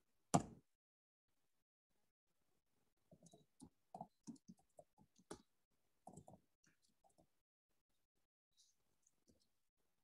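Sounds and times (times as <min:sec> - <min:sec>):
faint clicks and taps: 0:03.1 - 0:07.4, 0:09.0 - 0:09.6.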